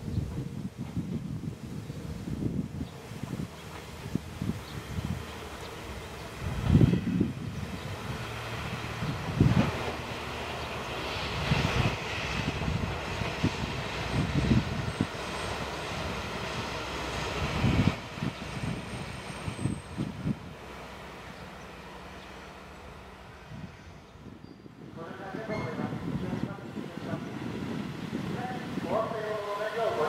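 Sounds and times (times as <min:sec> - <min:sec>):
wind buffeting microphone: 0:00.0 - 0:21.5, 0:22.2 - 0:30.0
diesel railcar engine running: 0:00.1 - 0:30.0.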